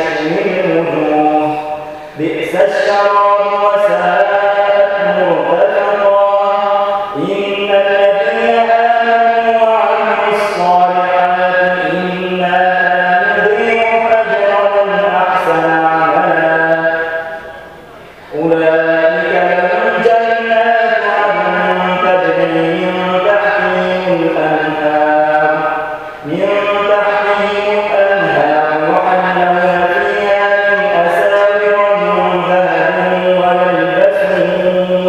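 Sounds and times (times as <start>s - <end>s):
man reciting melodically: 0.0s - 35.0s.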